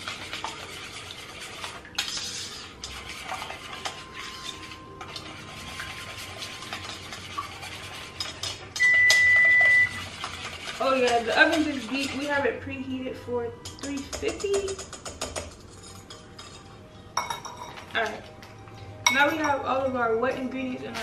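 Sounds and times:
whisk scraping metal bowl: 0.0 - 13.0, 13.6 - 16.8
electronic beep: 8.8 - 10.0.

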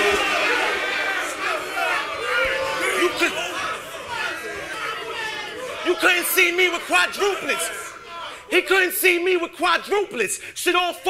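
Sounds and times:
crowd laughing: 0.0 - 8.7
crowd chatter: 0.0 - 11.0.

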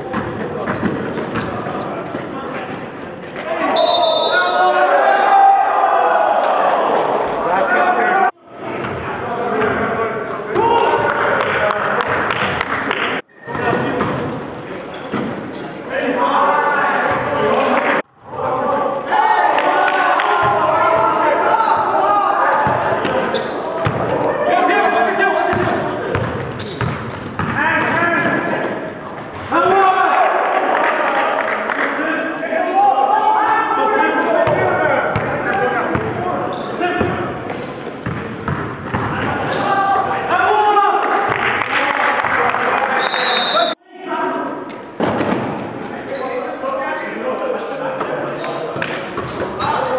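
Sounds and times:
players' voices: 0.0 - 49.9
basketball bouncing: 25.5 - 27.6, 38.0 - 39.3
basketball bouncing on wooden floor: 38.0 - 39.2.

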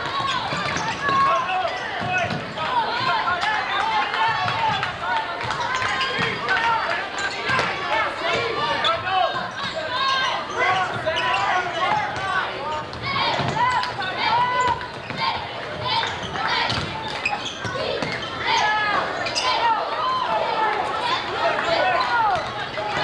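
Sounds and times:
people shouting and talking: 0.0 - 23.0.

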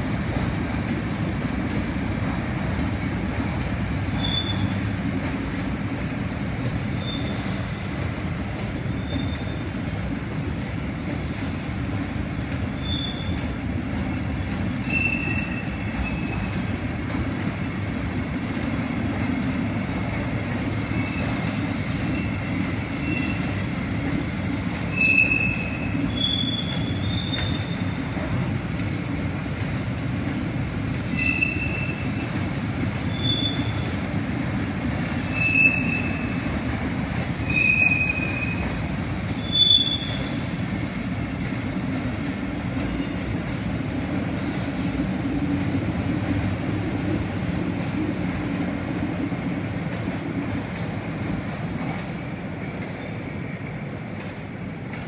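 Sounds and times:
train wheels rumbling on rail: 0.0 - 55.0
high-pitched wheel squeals: 4.2 - 4.7, 8.8 - 9.9, 12.8 - 13.3, 14.8 - 16.4, 24.9 - 28.0, 31.1 - 32.1, 33.1 - 33.9, 35.3 - 36.4, 37.4 - 38.6, 39.4 - 40.4.

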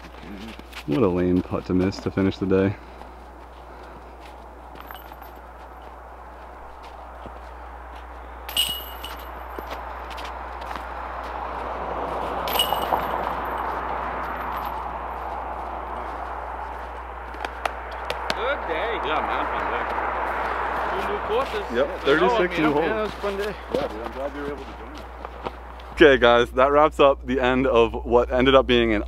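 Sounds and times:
steady rustling background: 0.0 - 18.7, 19.5 - 26.6
metal chains jingling: 4.8 - 5.5, 8.5 - 9.7, 12.5 - 14.8.

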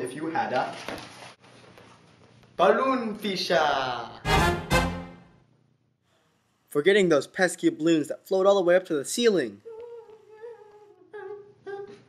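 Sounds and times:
person humming: 9.6 - 12.0.

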